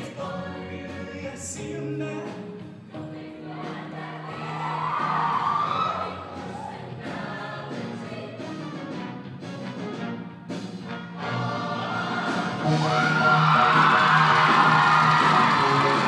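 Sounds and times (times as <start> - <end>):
choir singing: 0.0 - 1.2, 2.9 - 8.6, 11.1 - 16.0
steady bass line: 12.2 - 16.0.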